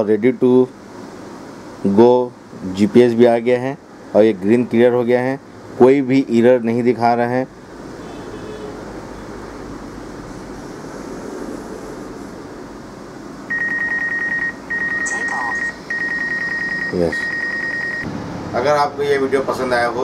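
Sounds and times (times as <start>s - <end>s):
low background noise: 0.0s - 20.0s
high warning beeps: 13.5s - 18.1s.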